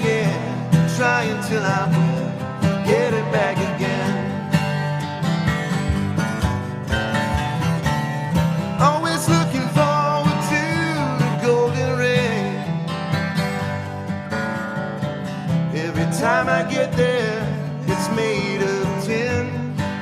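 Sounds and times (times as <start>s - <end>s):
acoustic band playing: 0.0s - 20.0s
guitars strummed: 0.0s - 20.0s.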